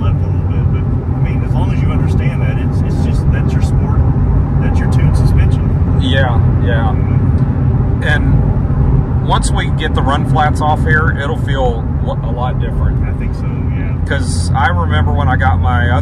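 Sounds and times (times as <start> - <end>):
car engine and tyre drone: 0.0 - 16.0.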